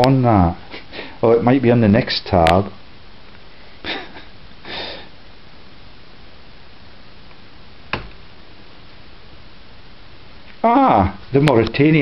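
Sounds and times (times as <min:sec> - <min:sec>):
low steady hiss: 0:00.0 - 0:12.0
person sniffing: 0:00.7 - 0:01.2, 0:04.6 - 0:05.2.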